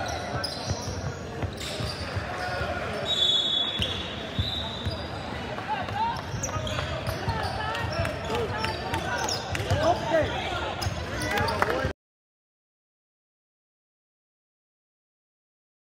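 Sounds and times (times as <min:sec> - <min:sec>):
sneakers squeaking: 0:00.0 - 0:11.9.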